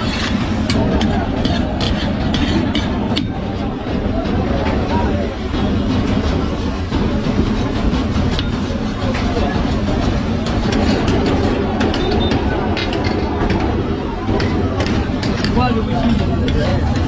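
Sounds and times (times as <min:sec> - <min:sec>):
constant voices: 0:00.0 - 0:17.0.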